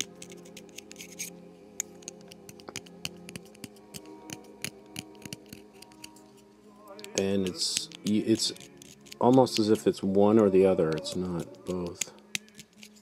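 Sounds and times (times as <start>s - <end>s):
knife scraping cane: 0.0s - 1.4s, 7.1s - 9.9s, 10.9s - 13.0s.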